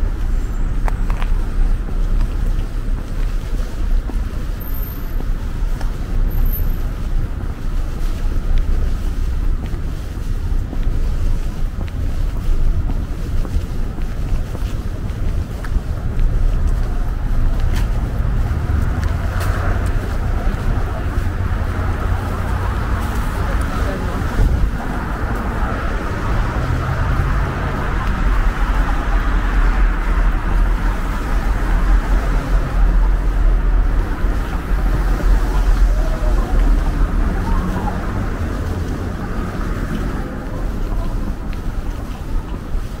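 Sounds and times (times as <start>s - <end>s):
steady road traffic: 0.0s - 43.0s
wind rumbling on microphone: 0.0s - 43.0s.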